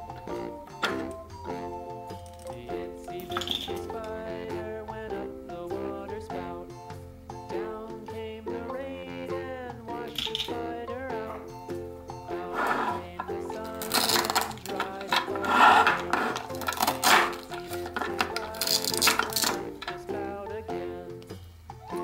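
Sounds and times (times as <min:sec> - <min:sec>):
background music: 0:00.0 - 0:22.0
plastic clacks: 0:03.2 - 0:04.1, 0:10.1 - 0:10.6, 0:12.7 - 0:20.1
velcro tearing: 0:13.8 - 0:19.6.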